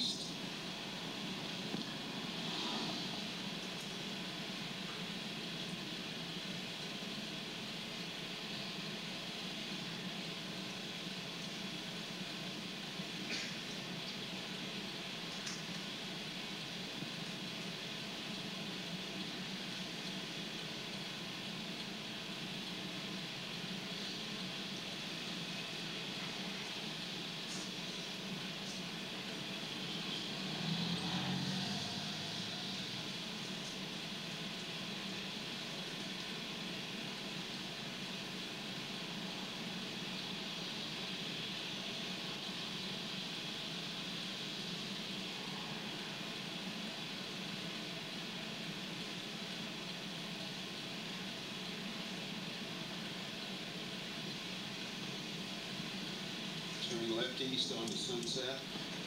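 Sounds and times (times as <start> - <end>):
car road and engine noise: 0.0 - 59.0.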